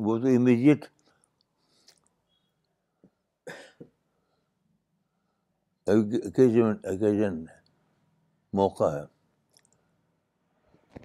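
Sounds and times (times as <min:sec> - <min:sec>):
man coughing: 0:03.5 - 0:03.9.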